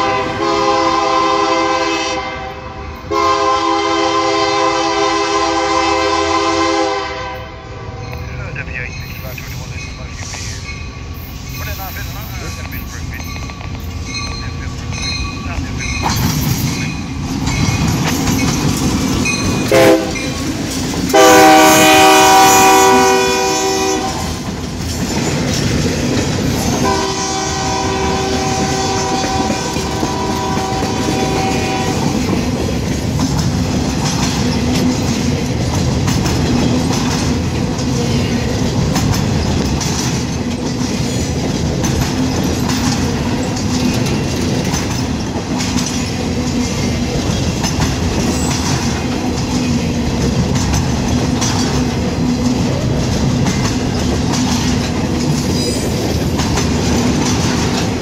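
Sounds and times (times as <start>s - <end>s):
locomotive horn blasts: 0.0s - 8.0s, 19.7s - 20.4s, 21.1s - 24.4s, 26.8s - 32.2s
train wheels clacking on rails: 8.0s - 58.0s.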